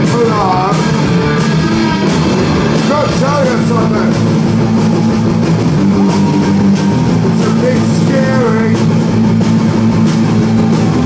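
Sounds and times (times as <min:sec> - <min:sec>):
distorted electric guitars: 0:00.0 - 0:11.0
drums and cymbals: 0:00.0 - 0:11.0.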